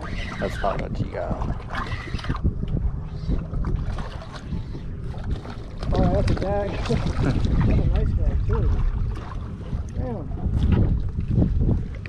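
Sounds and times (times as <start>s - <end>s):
water sloshing around boat: 0.0s - 12.0s
wind buffeting microphone: 0.0s - 12.0s.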